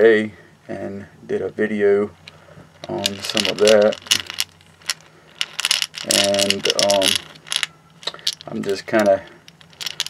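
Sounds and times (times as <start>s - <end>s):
lead bullets clinking in glass jar: 2.2s - 10.0s.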